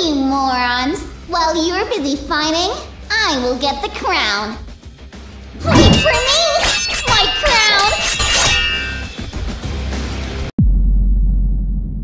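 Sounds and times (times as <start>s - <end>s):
background music: 0.0s - 10.5s
clanging fight sound effects: 5.6s - 9.3s.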